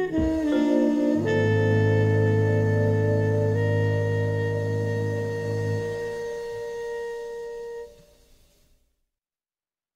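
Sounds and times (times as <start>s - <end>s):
jazz band held note: 0.0s - 8.0s.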